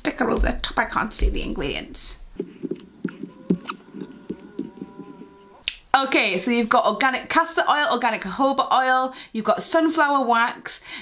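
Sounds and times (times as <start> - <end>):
fingernails scratching plastic tube: 2.4 - 5.4.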